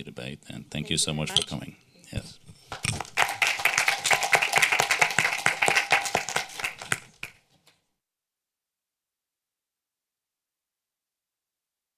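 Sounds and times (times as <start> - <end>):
audience applauding: 2.7 - 7.4.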